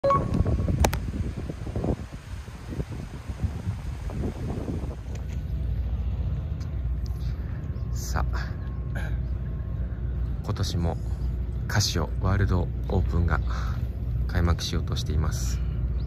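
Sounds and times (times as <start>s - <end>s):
wind rumbling on microphone: 0.0s - 10.5s.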